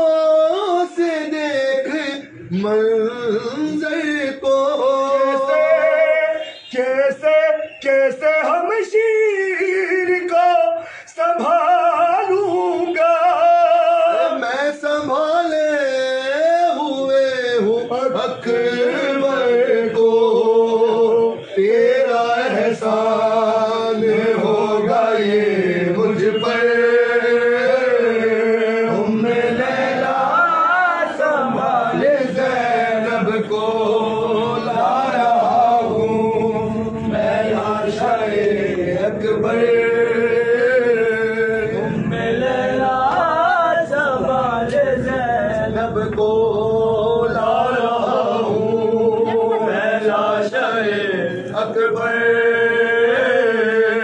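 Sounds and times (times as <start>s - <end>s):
men chanting a lament: 0.0s - 54.0s.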